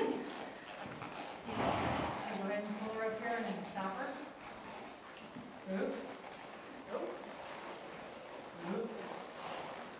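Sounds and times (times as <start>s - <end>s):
faint high insect chirp: 4.4s - 7.7s, 8.4s - 9.9s.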